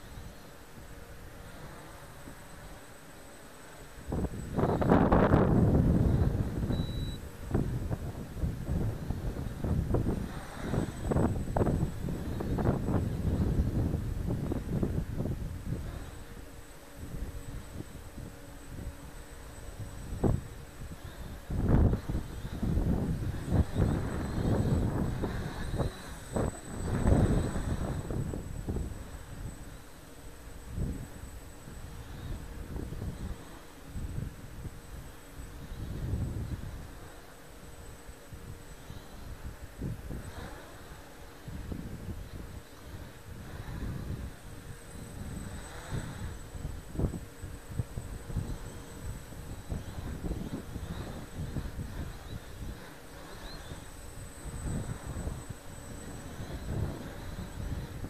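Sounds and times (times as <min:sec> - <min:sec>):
wind gusting on microphone: 0:00.0 - 0:58.0.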